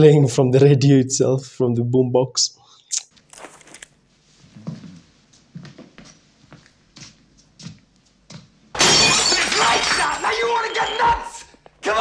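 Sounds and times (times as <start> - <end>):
crash of breaking glass: 8.8 - 11.3
man shouting: 9.3 - 12.0.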